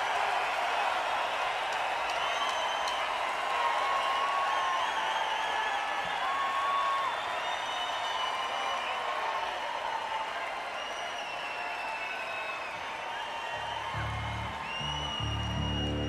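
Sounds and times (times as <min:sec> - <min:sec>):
crowd applauding: 0:00.0 - 0:16.0
crowd cheering woos: 0:00.0 - 0:16.0
warbling whistles: 0:12.1 - 0:16.0.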